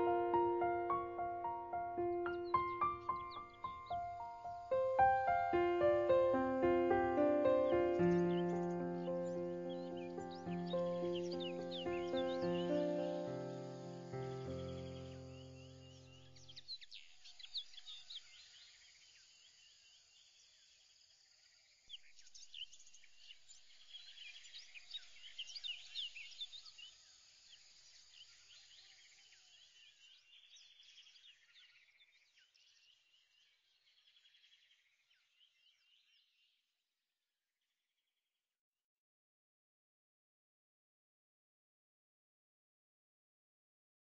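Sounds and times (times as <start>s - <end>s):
music: 0.0s - 16.3s
small birds chirping: 0.0s - 36.6s.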